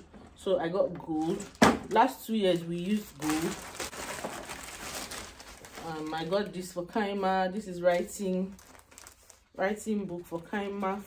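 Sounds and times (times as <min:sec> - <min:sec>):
plastic bag rustling: 0:01.1 - 0:11.0.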